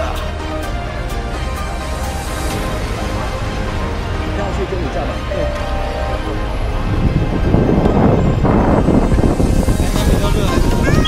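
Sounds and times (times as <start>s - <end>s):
street traffic: 0.0s - 11.0s
wind buffeting microphone: 6.0s - 11.0s.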